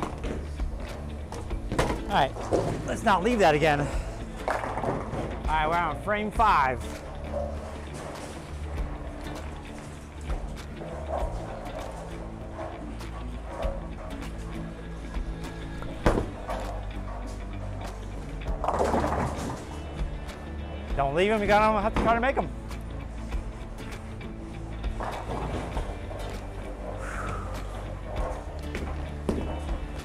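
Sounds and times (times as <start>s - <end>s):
background music: 0.0s - 30.0s
bowling pins crashing: 4.4s - 5.5s, 18.5s - 19.8s.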